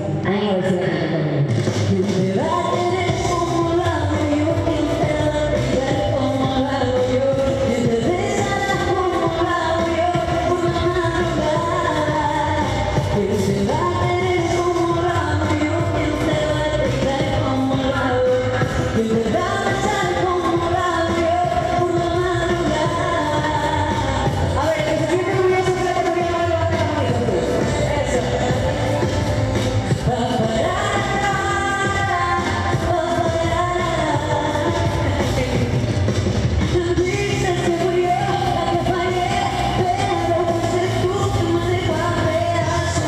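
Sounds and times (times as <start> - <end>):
backing music with low beat: 0.0 - 43.0
woman singing into a microphone: 0.0 - 43.0.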